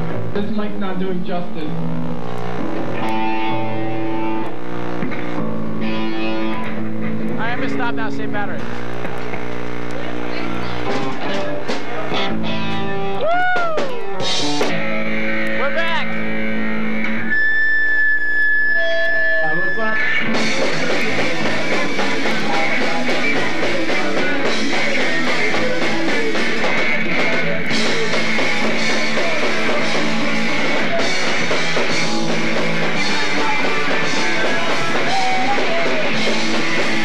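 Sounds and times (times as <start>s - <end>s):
electric guitars bending notes: 0.0s - 37.0s
loud rock band: 0.0s - 37.0s.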